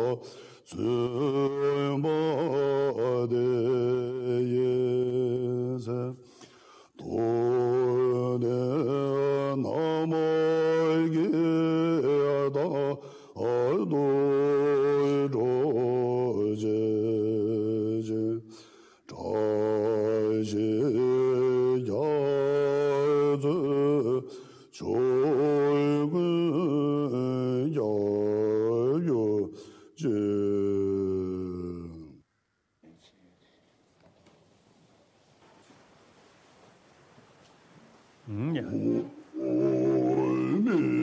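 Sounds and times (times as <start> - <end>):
monk chanting in deep voice: 0.0 - 6.2, 6.9 - 18.5, 19.1 - 32.2, 38.3 - 41.0
low male voice chanting: 38.3 - 41.0.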